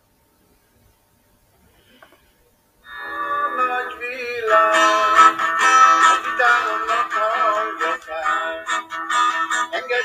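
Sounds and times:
acoustic guitar plucked notes: 0:02.9 - 0:10.0
person singing wavering melody: 0:02.9 - 0:10.0.

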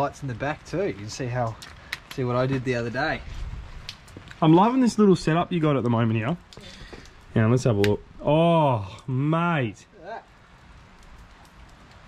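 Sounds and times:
faint steady rain: 0:00.0 - 0:12.0.

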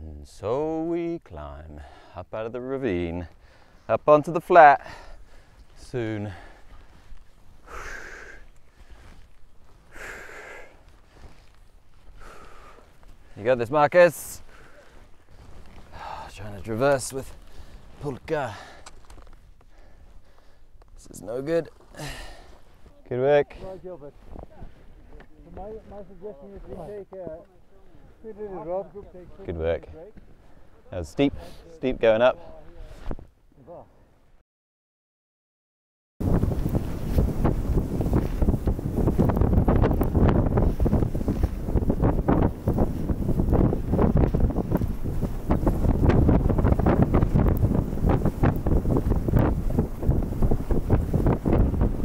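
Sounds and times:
people chatting: 0:00.0 - 0:01.8, 0:03.9 - 0:04.9, 0:13.4 - 0:14.4, 0:16.0 - 0:17.4, 0:18.0 - 0:18.6, 0:21.0 - 0:21.7, 0:23.0 - 0:30.2, 0:30.9 - 0:33.0
strong wind on microphone: 0:36.2 - 0:52.0.

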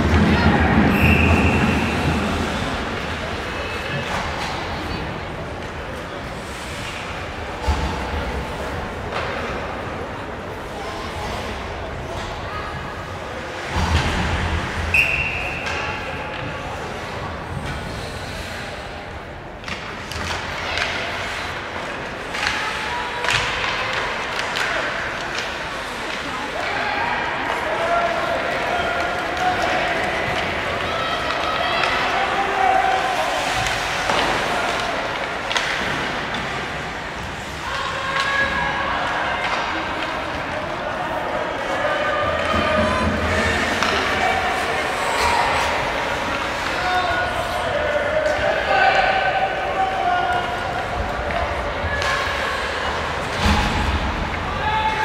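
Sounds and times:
spectators and players calling out: 0:20.8 - 0:55.0
hockey sticks and puck knocking: 0:42.3 - 0:44.7.

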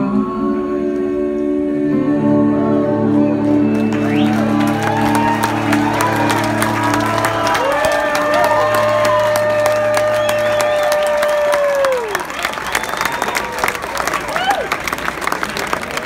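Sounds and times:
audience applause and cheers: 0:03.4 - 0:16.0.

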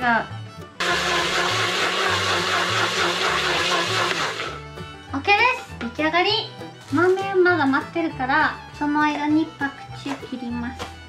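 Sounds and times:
electric blender whirring: 0:00.8 - 0:04.6.

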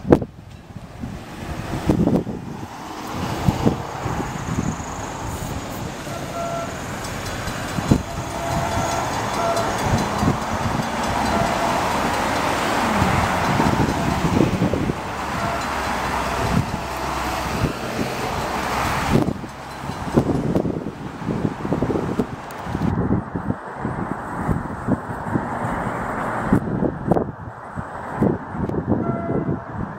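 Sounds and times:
train rumble: 0:00.0 - 0:29.9
wind noise on microphone: 0:00.0 - 0:29.9.

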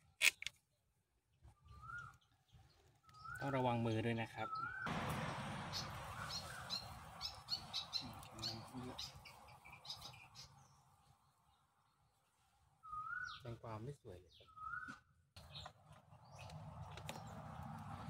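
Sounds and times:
small birds chirping: 0:00.4 - 0:18.0
rustling hiss: 0:04.9 - 0:10.2.

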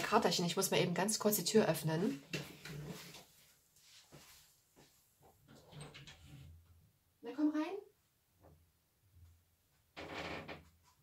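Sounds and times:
soft knocks and shuffles: 0:02.4 - 0:05.6.

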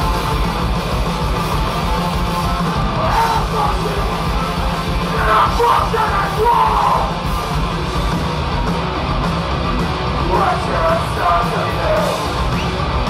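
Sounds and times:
punk band playing live: 0:00.0 - 0:13.0
vocalist yelling: 0:03.0 - 0:04.1, 0:05.1 - 0:07.2.

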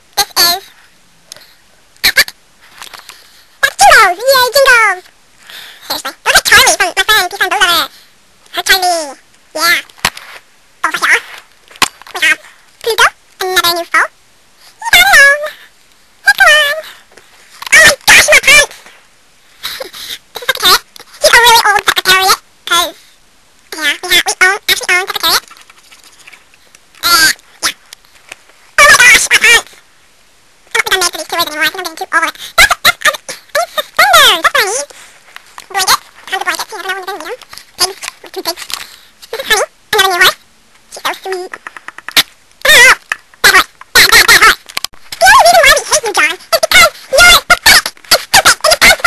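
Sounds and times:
high-pitched vocal noises: 0:00.1 - 0:09.9, 0:10.8 - 0:19.0, 0:19.6 - 0:23.0, 0:23.7 - 0:26.3, 0:27.0 - 0:27.9, 0:28.7 - 0:29.8, 0:30.7 - 0:49.0
person making warbling sounds: 0:10.8 - 0:11.3, 0:27.0 - 0:27.8, 0:35.6 - 0:38.6, 0:39.3 - 0:49.0.

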